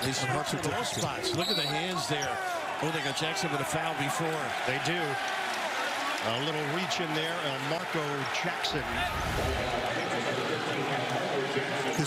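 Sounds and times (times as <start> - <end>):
arena crowd talking and shouting: 0.0 - 12.0.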